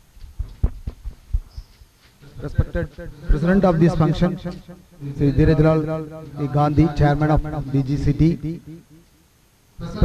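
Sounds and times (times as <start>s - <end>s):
microphone handling thumps: 0.2s - 2.0s.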